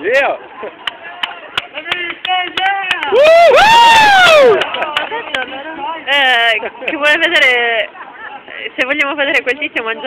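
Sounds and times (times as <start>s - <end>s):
crowd noise: 0.0s - 10.0s
person shouting a cheer: 2.5s - 4.6s.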